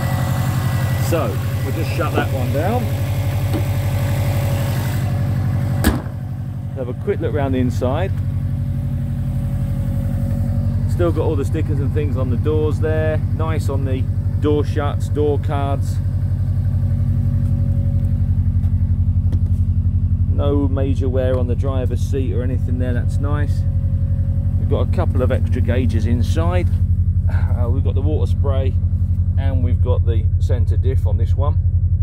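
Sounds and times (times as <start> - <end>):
car engine idling: 0.0 - 32.0
car bonnet slammed shut: 5.8 - 6.2.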